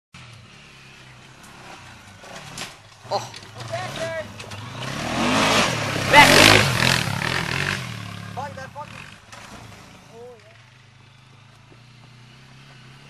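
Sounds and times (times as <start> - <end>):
quad engine revving: 0.2 - 13.0.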